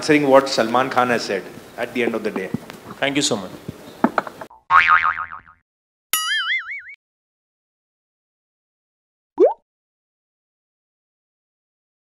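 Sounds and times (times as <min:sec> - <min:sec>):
cartoon boing: 0:04.5 - 0:05.6, 0:06.2 - 0:07.0, 0:09.4 - 0:09.6.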